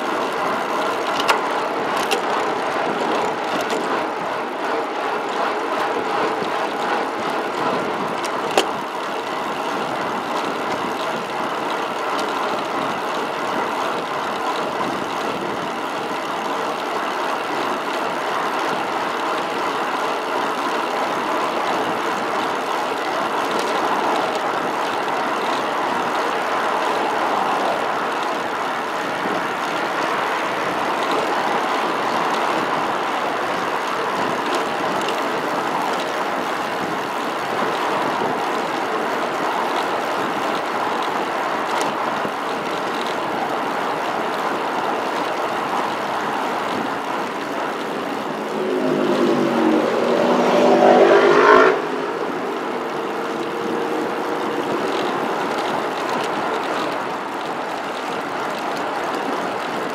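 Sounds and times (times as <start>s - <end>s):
highway traffic rush: 0.0s - 59.9s.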